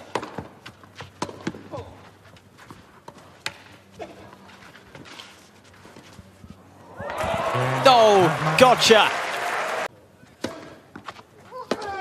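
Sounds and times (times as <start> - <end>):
racket striking tennis ball: 0.0 - 1.8
footsteps on clay court: 0.0 - 7.8, 10.4 - 12.0
hushed crowd: 6.9 - 9.9.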